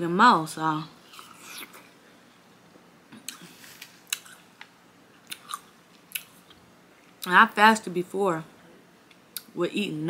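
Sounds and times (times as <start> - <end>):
person chewing watermelon: 1.1 - 1.8, 4.0 - 4.4, 5.2 - 6.6.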